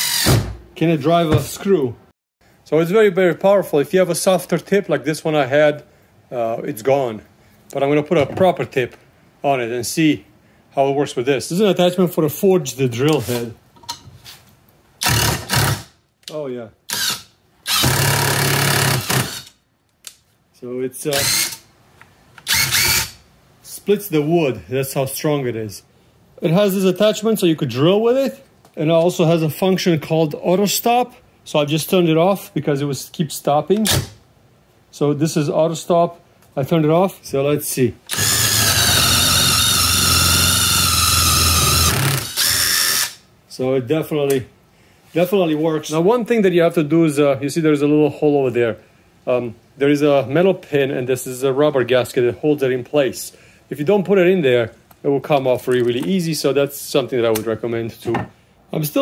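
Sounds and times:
power drill motor whining: 0.0s - 0.4s, 16.9s - 19.5s, 21.1s - 21.6s, 22.4s - 23.2s, 38.1s - 43.2s
impact wrench driving screw: 0.0s - 0.5s, 15.0s - 15.9s, 16.9s - 19.6s, 22.4s - 23.2s, 38.1s - 43.2s.

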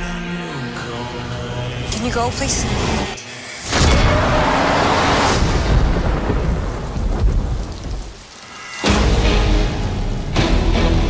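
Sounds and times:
rain-like rushing noise: 3.4s - 11.0s
deep thunder-like rumble: 3.8s - 8.3s.

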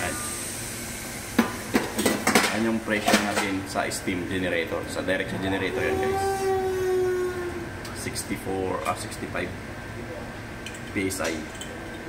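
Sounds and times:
steam autoclave hissing: 0.0s - 3.1s.

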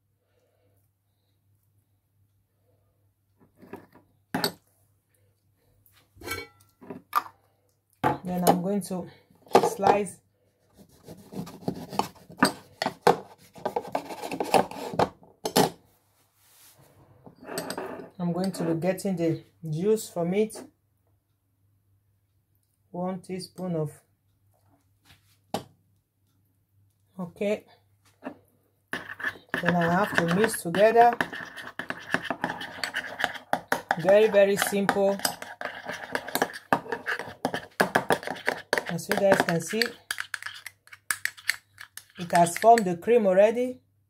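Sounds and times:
knife sawing through lemon: 29.0s - 40.7s
teaspoon scraping glass bowl: 29.0s - 42.9s.

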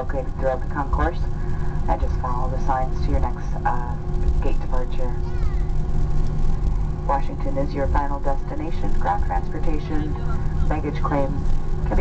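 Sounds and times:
jet engines idling rumble: 0.0s - 12.0s
steady hum tones: 0.0s - 12.0s.

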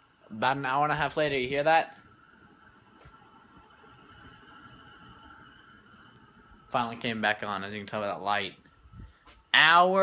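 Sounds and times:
high-pitched electrical whine: 0.0s - 10.0s.

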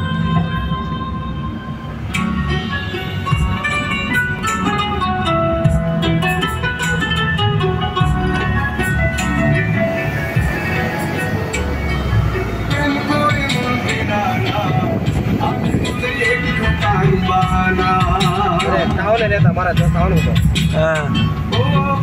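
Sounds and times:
background music melody: 0.0s - 22.0s.

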